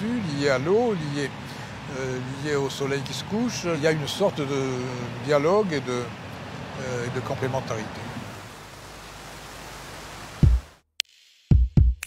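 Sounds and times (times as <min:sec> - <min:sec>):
fountain splashing into pool: 0:08.2 - 0:10.8.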